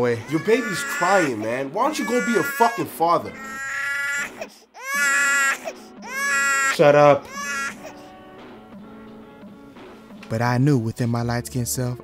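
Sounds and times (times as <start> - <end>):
infant crying: 0.0 - 8.1.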